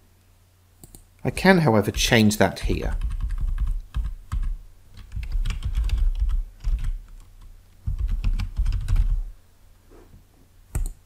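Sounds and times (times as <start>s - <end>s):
typing on computer keyboard: 2.9s - 9.2s, 10.8s - 11.0s.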